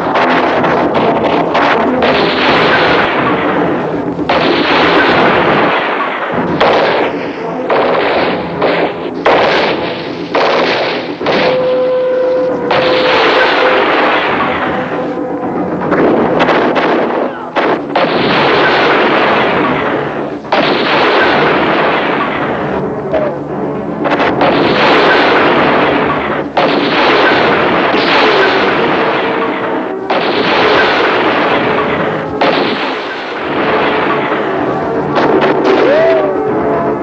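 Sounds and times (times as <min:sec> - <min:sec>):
explosions: 0:00.0 - 0:37.0.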